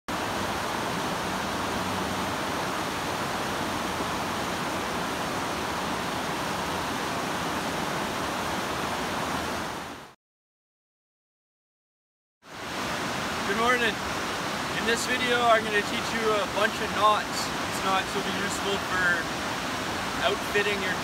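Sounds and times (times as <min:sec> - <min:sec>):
river rushing over boulders: 0:00.1 - 0:10.1, 0:12.5 - 0:21.0.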